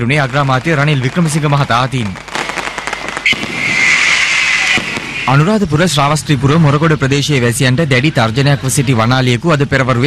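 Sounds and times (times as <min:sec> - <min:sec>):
fireworks crackling: 0:00.0 - 0:07.5
steady high hiss: 0:00.3 - 0:08.0.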